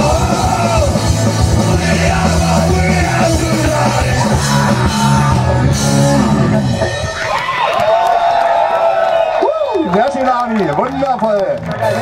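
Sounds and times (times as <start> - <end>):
person singing: 0.0 - 6.5
punk rock band playing: 0.0 - 7.6.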